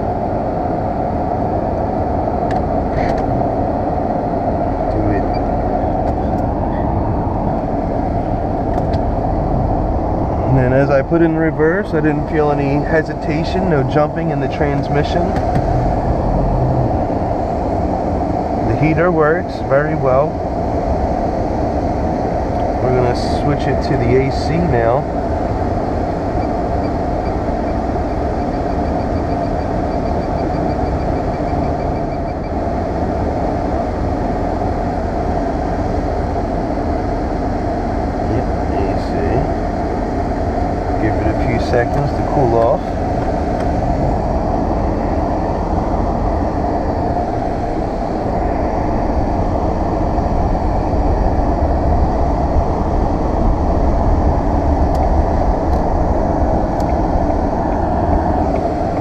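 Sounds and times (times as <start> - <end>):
car blower fan running: 0.0 - 59.0
car engine: 0.0 - 59.0
road noise: 0.0 - 59.0.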